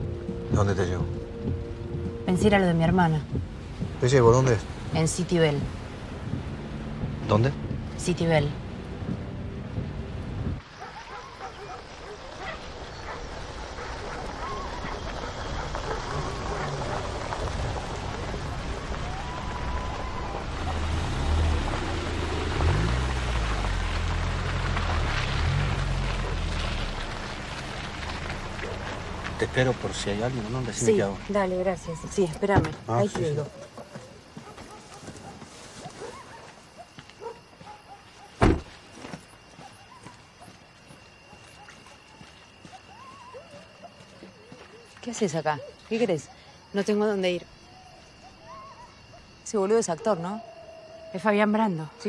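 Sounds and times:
rain hissing: 0.1 - 33.4
car engine rumbling: 12.7 - 33.4.

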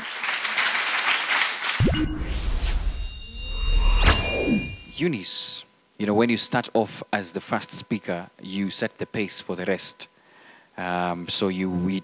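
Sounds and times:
audience applauding: 0.0 - 1.8
rising whoosh sound effect: 1.8 - 5.0.

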